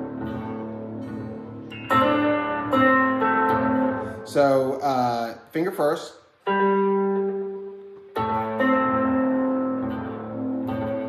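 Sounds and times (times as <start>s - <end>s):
electric guitar plucked notes: 0.0s - 5.3s, 6.3s - 11.0s.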